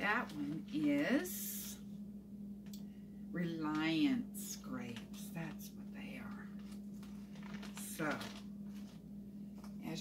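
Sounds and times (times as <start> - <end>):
steady low hum: 0.0 - 10.0
plastic bag rustling: 4.9 - 9.8.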